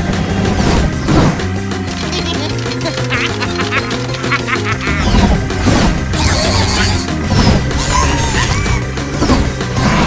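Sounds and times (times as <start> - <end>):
cartoon soundtrack music: 0.0 - 10.0.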